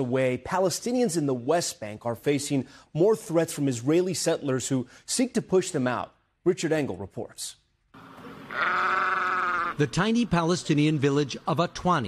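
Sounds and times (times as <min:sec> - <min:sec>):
sheep bleating: 0:08.5 - 0:09.8.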